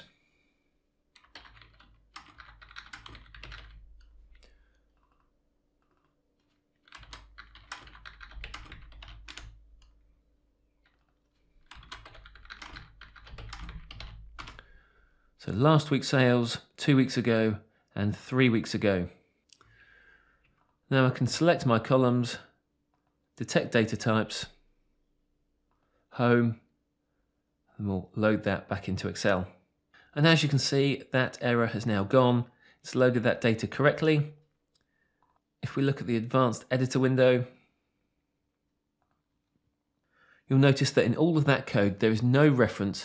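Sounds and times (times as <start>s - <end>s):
faint breath: 0.0s - 0.8s, 4.4s - 4.9s, 14.5s - 15.4s, 19.2s - 20.7s, 34.8s - 35.4s, 40.0s - 40.5s
typing on computer keyboard: 1.2s - 10.0s, 10.8s - 14.7s.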